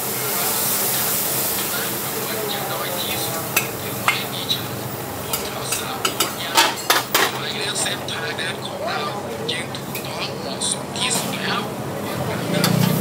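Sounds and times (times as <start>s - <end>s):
stir-fry sizzling in a wok: 0.0s - 13.0s
metal ladle stirring food: 3.5s - 4.4s, 5.2s - 7.4s, 12.6s - 13.0s
ladle clinking against wok: 12.6s - 13.0s.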